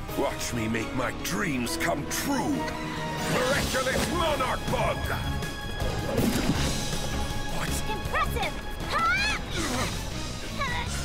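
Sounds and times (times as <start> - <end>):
dramatic music: 0.0 - 11.0.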